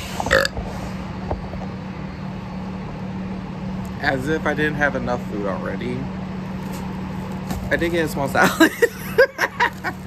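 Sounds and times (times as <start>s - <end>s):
steady low hum: 0.0s - 10.0s
man burping: 0.3s - 0.6s.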